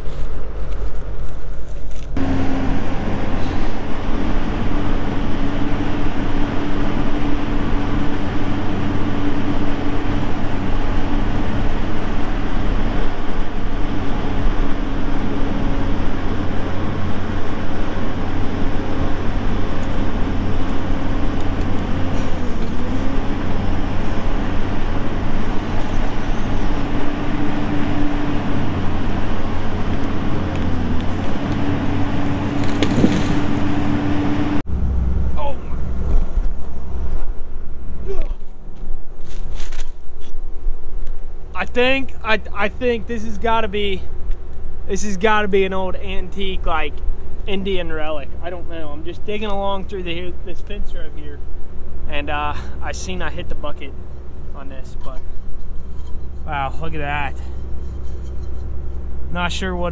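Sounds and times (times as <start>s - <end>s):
excavator diesel engine under load: 0.0s - 37.9s, 44.8s - 59.9s
bucket pushing on dead tree: 30.6s - 33.7s.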